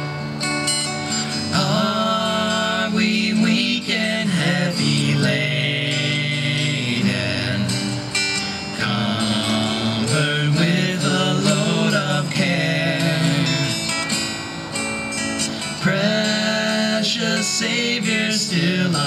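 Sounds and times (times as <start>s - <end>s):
acoustic guitars strummed: 0.0s - 19.0s
man singing: 1.2s - 14.0s, 15.6s - 19.0s.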